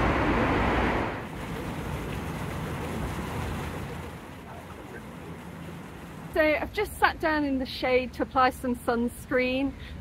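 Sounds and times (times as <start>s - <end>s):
fountain water splashing: 1.0s - 10.0s.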